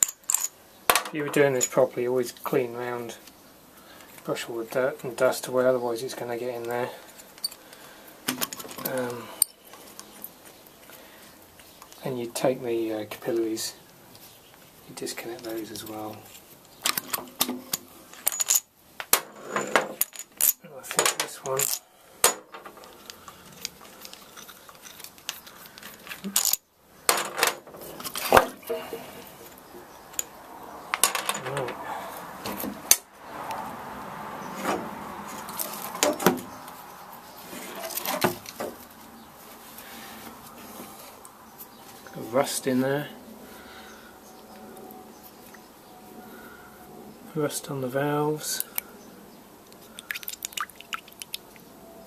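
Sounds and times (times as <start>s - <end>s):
metal parts clinking and knocking: 0.0s - 1.8s, 16.8s - 28.3s, 30.9s - 31.8s.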